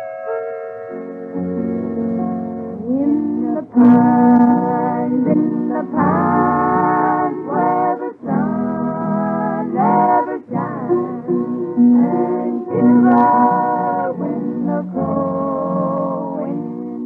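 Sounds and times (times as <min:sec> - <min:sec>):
guitar accompaniment: 0:00.8 - 0:17.0
vocal group singing in harmony: 0:02.8 - 0:17.0.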